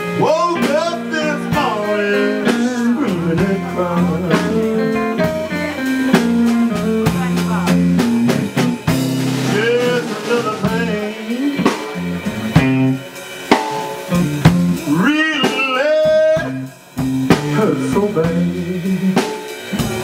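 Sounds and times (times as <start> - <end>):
bending electric guitar lead: 0.0 - 20.0
live blues band: 0.0 - 20.0
snare and rimshot strokes: 8.7 - 15.7.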